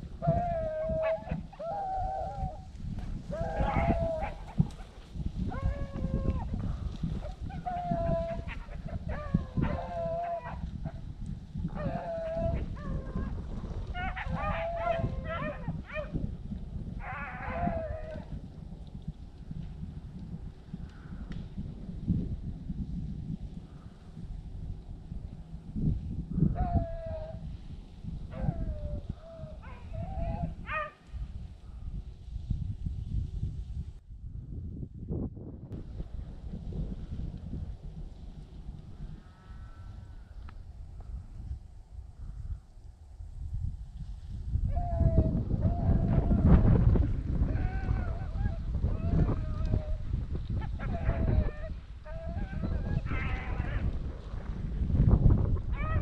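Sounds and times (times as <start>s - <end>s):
dogs baying: 0.2s - 2.5s, 3.3s - 4.9s, 7.2s - 11.0s, 11.8s - 13.3s, 14.0s - 16.2s, 17.0s - 18.3s, 50.6s - 53.9s.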